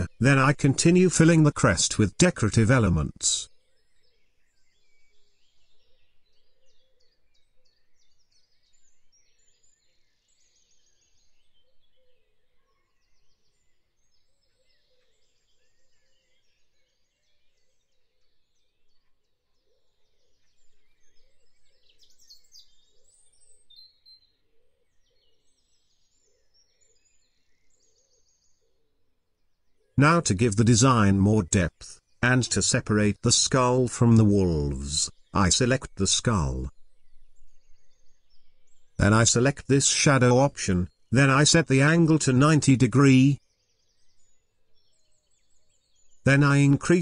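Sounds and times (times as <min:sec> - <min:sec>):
faint birds chirping: 0:00.0 - 0:47.0.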